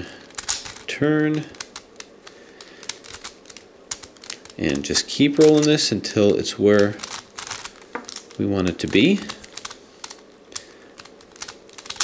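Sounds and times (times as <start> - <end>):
plastic puzzle clicks: 0.2 - 5.8, 6.8 - 12.0.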